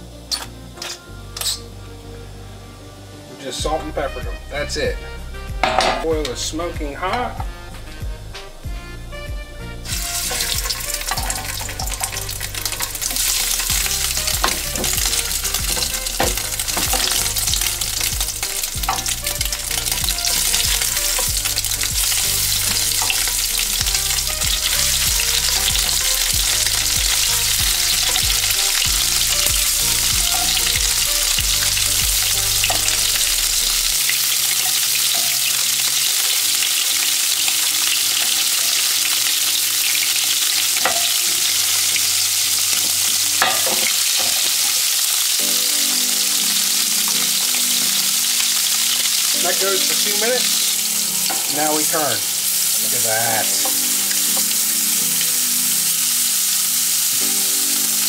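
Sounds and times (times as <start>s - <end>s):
scallops sizzling in a frying pan: 9.9s - 58.0s.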